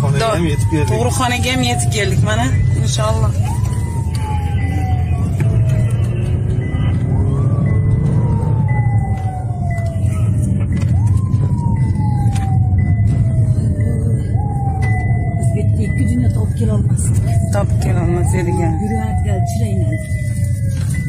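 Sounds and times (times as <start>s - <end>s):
car engine and road rumble: 0.0s - 21.0s
police siren wailing: 0.0s - 21.0s.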